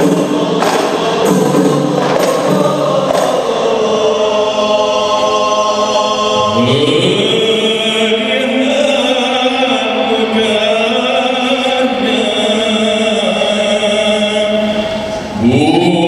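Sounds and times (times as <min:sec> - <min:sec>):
frame drum strokes: 0:00.0 - 0:03.8
men singing in unison: 0:00.0 - 0:16.0.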